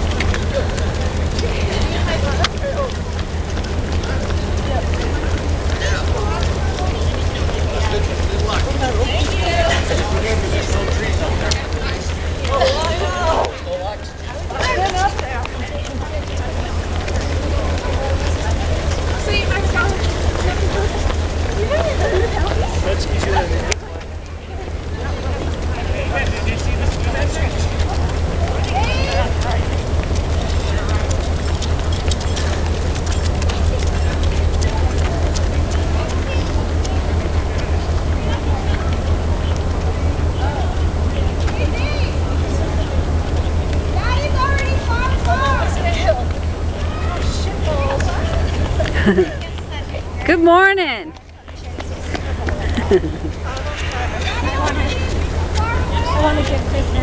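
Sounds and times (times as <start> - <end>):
low rumble: 0.0 - 50.2
faint voices: 0.0 - 57.0
runners chattering: 0.0 - 57.0.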